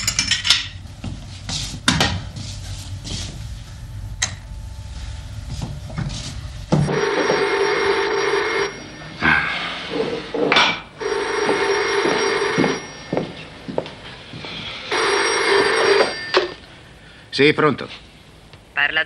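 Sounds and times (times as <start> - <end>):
telephone bell ringing: 6.9 - 9.2, 11.0 - 13.5, 14.9 - 16.6.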